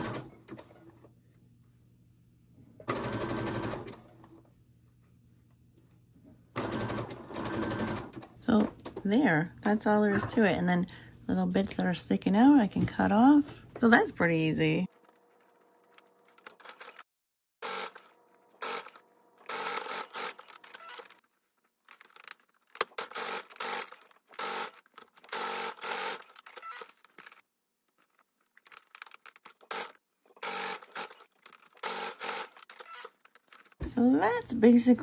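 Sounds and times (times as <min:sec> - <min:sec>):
sewing machine stitching: 0:02.9 - 0:04.0, 0:06.6 - 0:08.3, 0:17.6 - 0:21.2, 0:22.1 - 0:27.4, 0:28.1 - 0:33.8.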